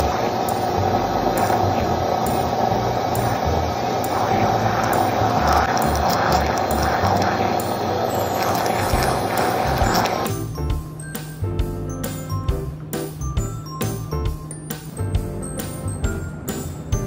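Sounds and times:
blender motor whirring: 0.0s - 10.6s.

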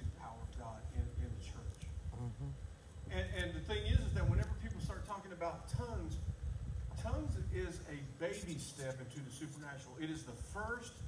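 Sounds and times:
person talking indistinctly: 2.1s - 2.6s.

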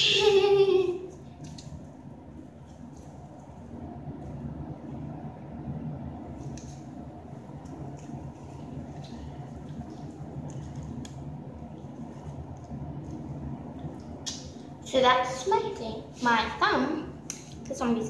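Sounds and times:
low background hum: 0.0s - 18.0s.

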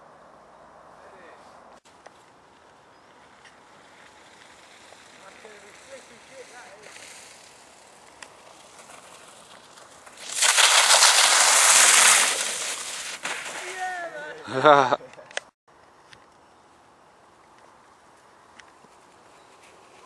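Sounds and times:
board sliding through slush: 4.1s - 13.9s.

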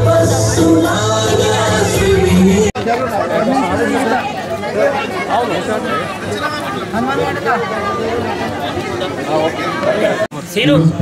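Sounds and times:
song with singing: 0.0s - 2.8s
crowd chattering: 0.0s - 11.0s.

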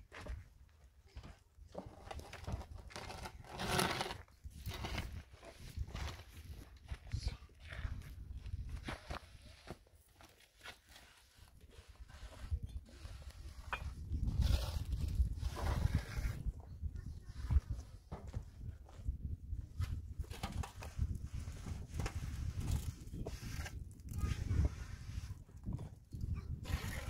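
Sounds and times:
footsteps on rough ground: 0.0s - 3.8s, 4.6s - 10.4s
concrete blocks and tools handled: 0.1s - 16.6s.

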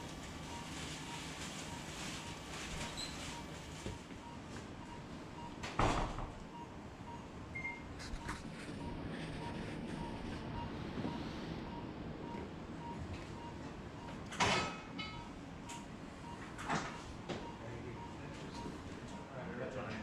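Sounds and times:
room background hum: 0.0s - 20.0s
short medical equipment beeps: 6.6s - 14.2s.

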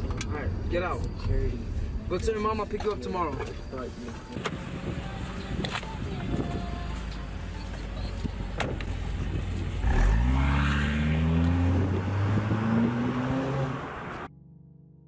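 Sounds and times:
car engine idling: 0.0s - 9.9s
car door shutting: 4.3s - 9.6s
car accelerating through gears: 9.7s - 14.3s.

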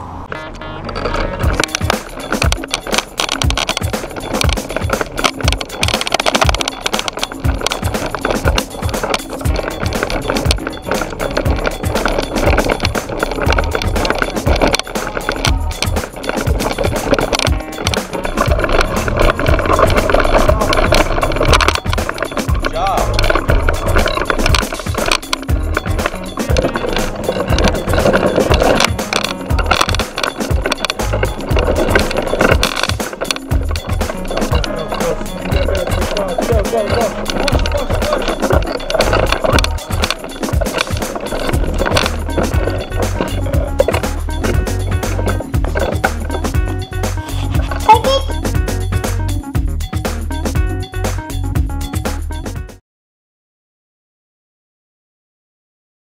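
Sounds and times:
music: 0.2s - 52.8s
tricycle rattling on concrete: 0.3s - 52.8s.

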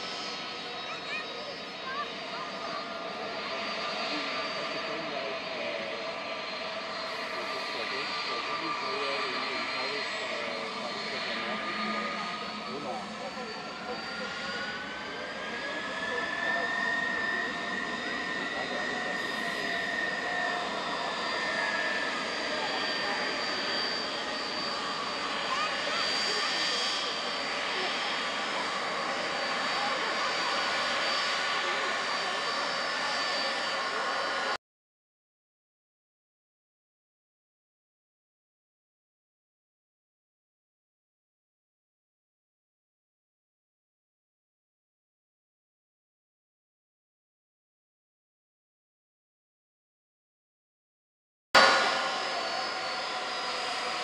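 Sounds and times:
jet engines whining: 0.0s - 34.6s, 51.6s - 54.0s.

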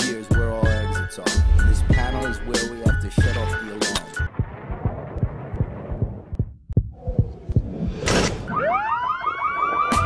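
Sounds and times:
low rumble: 1.4s - 6.4s
low heartbeat-like bass thuds: 1.4s - 8.0s.

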